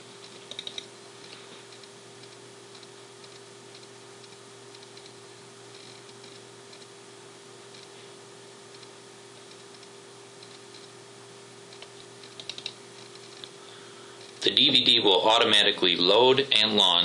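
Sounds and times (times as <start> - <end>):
steady low hum: 0.0 - 17.0
computer mouse clicks: 0.2 - 0.9, 1.7 - 5.2, 7.7 - 7.9, 8.7 - 10.9, 11.7 - 13.5.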